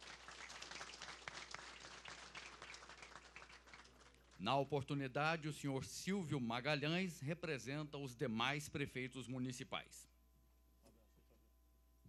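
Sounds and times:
audience applauding: 0:00.0 - 0:04.4.

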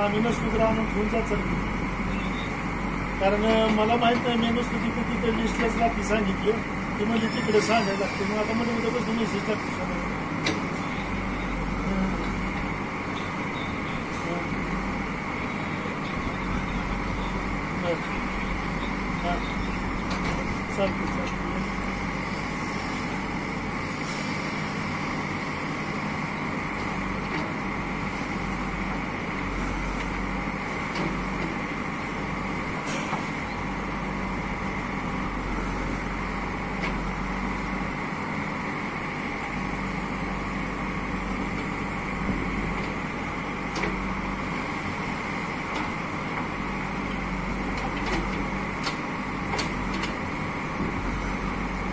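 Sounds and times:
diesel engine under load: 0:00.0 - 0:51.9.

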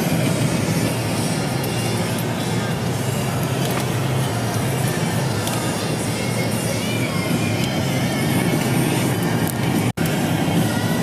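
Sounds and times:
car engine and road noise: 0:00.0 - 0:11.0
music playing: 0:00.0 - 0:11.0.

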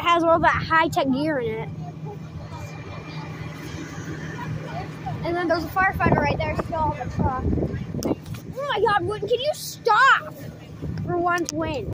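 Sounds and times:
faint voices: 0:00.0 - 0:11.9.

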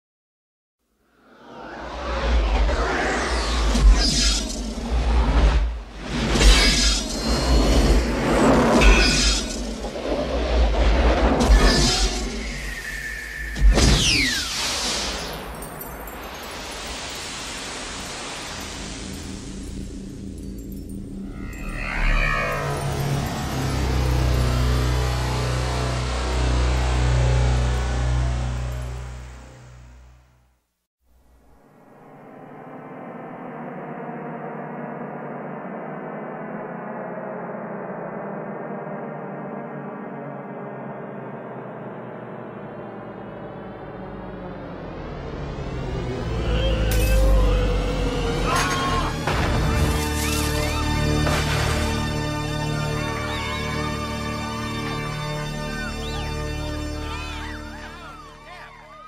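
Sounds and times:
falling sweep: 0:01.2 - 0:19.8, 0:21.2 - 0:25.7
crashes and whooshes: 0:01.2 - 0:26.2
steady hiss: 0:14.5 - 0:20.2
deep sustained drone: 0:19.0 - 0:30.0, 0:38.2 - 0:58.6.

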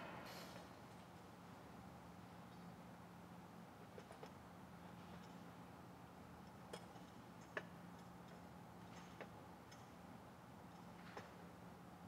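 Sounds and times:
faint metal chain clicks: 0:03.9 - 0:05.5, 0:06.4 - 0:10.0.

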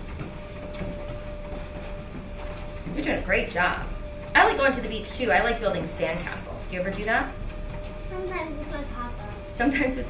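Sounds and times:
treadmill belt rumble: 0:00.0 - 0:10.0
treadmill motor whine: 0:00.0 - 0:10.0.

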